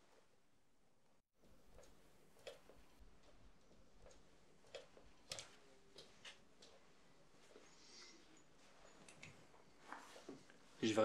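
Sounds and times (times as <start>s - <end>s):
faint irregular clicks: 1.4s - 10.6s.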